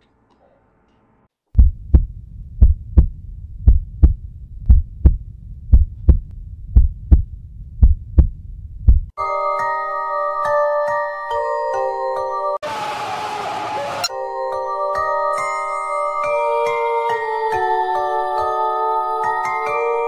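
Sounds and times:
heartbeat thumps: 1.6 - 9.2
music with bell-like mallet tones: 9.2 - 12.6.

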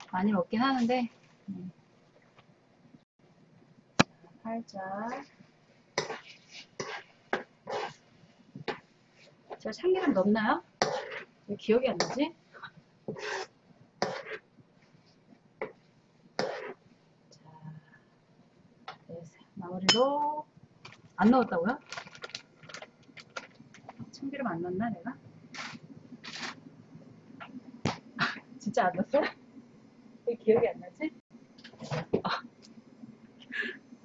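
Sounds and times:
chopsticks scraping in a wok: 6.0 - 8.0, 10.0 - 11.3, 13.1 - 14.4, 16.4 - 16.8, 25.6 - 26.6.

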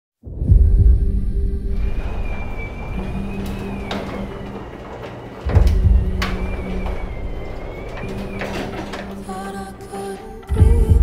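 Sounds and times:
garage door opener humming: 1.2 - 11.0
clicks: 1.7 - 10.7.

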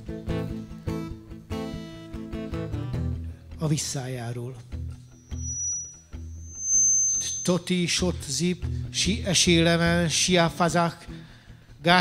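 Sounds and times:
thin high whine: 4.9 - 8.0.

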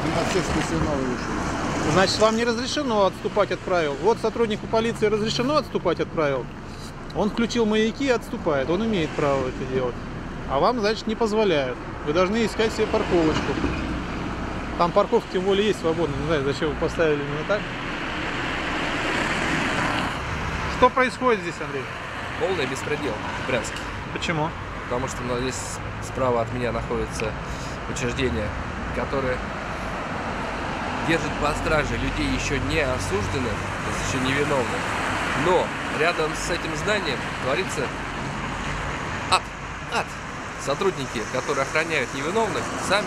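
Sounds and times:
low traffic rumble: 0.0 - 43.0
car passing: 12.4 - 25.8, 27.4 - 43.0.

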